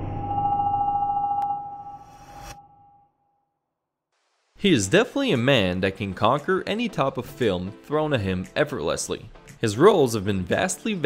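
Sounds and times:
ringing tone: 0.0 - 3.2.

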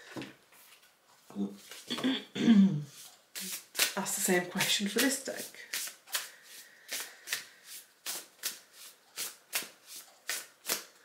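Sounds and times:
cards being shuffled: 2.9 - 11.0.

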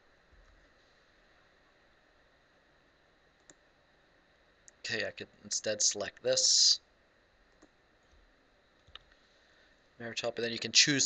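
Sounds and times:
faint clicks: 3.4 - 3.6.

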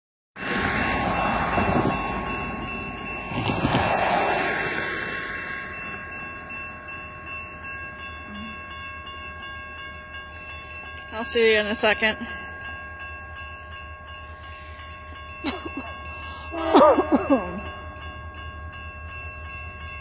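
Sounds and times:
loud rushing noise: 0.4 - 5.8
railroad crossing bell ringing: 0.4 - 20.0.

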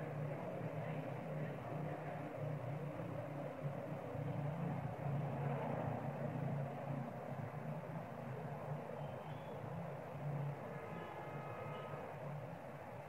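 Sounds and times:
steady low rumble with hiss: 0.0 - 13.0.

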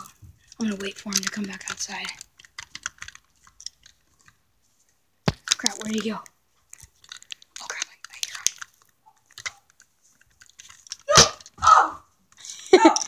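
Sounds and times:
small clicks: 0.0 - 4.4, 5.3 - 11.6
handling rustles: 0.0 - 13.0.

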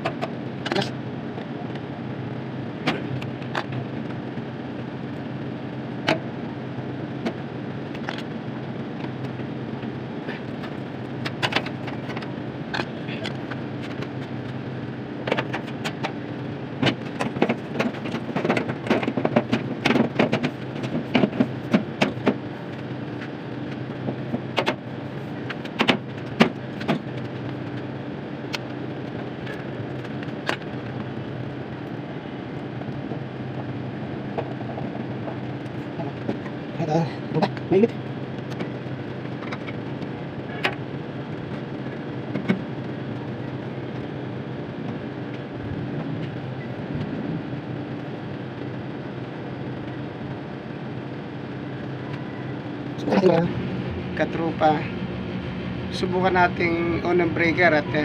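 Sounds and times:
low machine hum: 0.0 - 58.0.

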